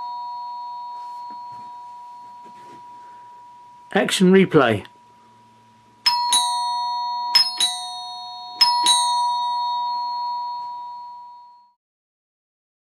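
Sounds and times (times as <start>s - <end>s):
door chime ding-dong: 0.0s - 4.0s, 6.0s - 11.8s.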